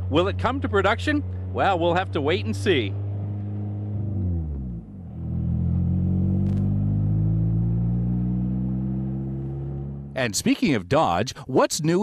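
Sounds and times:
car engine driving past: 1.2 - 10.2.

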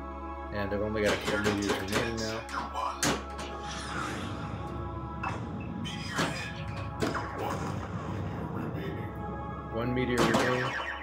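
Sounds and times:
pinball machine music: 0.9 - 8.8, 9.6 - 11.0
sharp pinball hits: 1.0 - 2.2, 10.2 - 11.0
pinball sound effects: 10.2 - 11.0.

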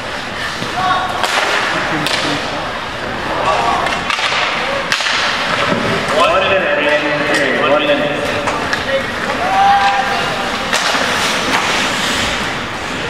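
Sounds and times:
skates scraping ice: 0.1 - 13.0
stick hitting puck: 0.6 - 2.3, 3.8 - 5.9, 10.7 - 11.9
people shouting: 3.2 - 5.0, 9.0 - 10.8.

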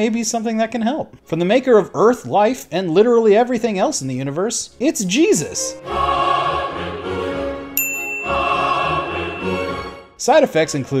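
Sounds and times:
choir holding a chord: 5.8 - 10.2
bright bell ding: 7.8 - 8.6.

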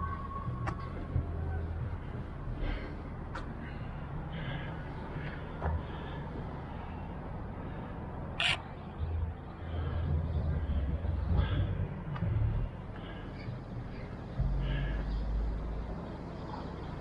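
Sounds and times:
low city rumble: 0.0 - 17.0.

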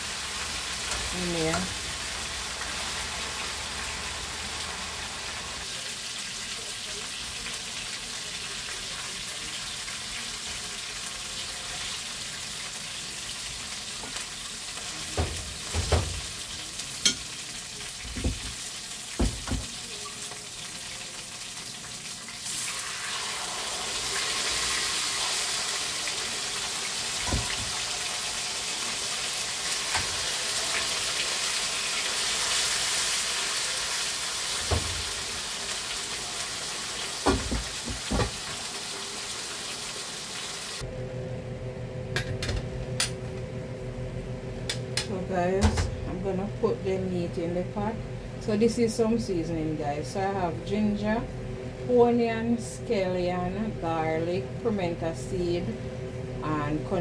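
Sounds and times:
meat sizzling in oil: 0.0 - 40.8.

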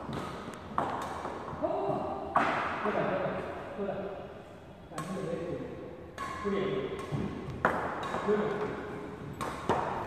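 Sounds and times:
badminton racket hitting shuttlecock: 6.1 - 10.0.

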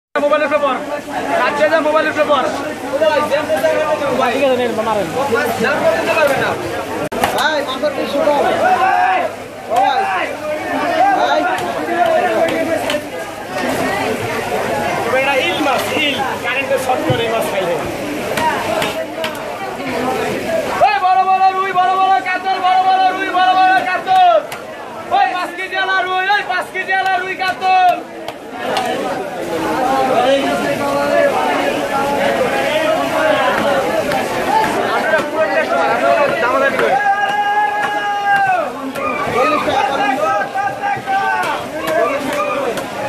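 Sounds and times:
chatter of several voices: 0.2 - 43.0.

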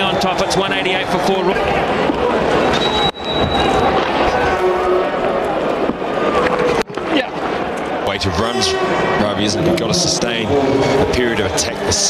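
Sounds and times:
stadium crowd cheering and shouting: 0.0 - 12.0.

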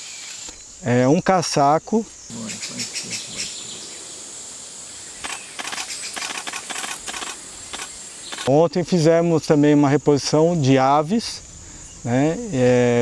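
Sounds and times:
high-pitched insect drone: 0.0 - 13.0.

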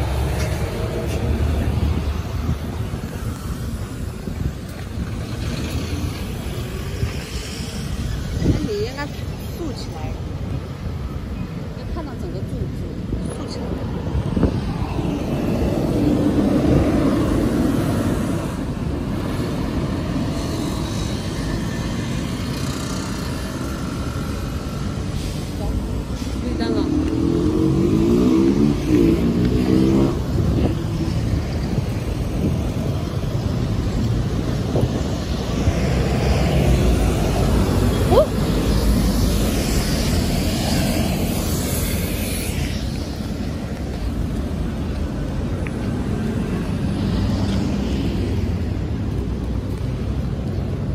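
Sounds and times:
passing cars rumbling: 0.0 - 50.9.

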